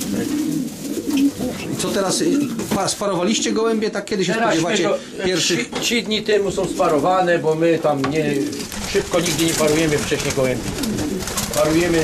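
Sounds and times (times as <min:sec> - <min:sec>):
pigeons cooing: 0:00.0 - 0:02.7, 0:06.4 - 0:07.2, 0:08.1 - 0:12.0.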